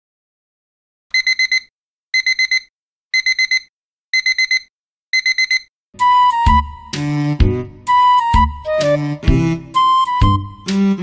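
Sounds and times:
alarm clock beeping: 1.1s - 5.7s.

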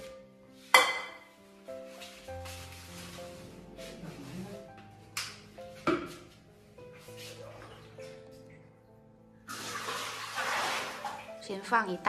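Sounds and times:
background music with steady tones: 0.0s - 12.0s.

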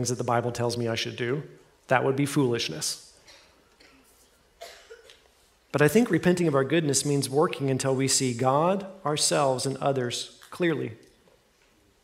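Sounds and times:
soft cough: 3.2s - 5.3s.

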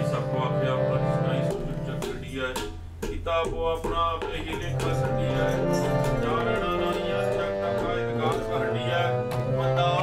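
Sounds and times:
harmonium: 0.0s - 3.2s, 3.9s - 10.0s
tabla strokes: 1.3s - 9.8s.

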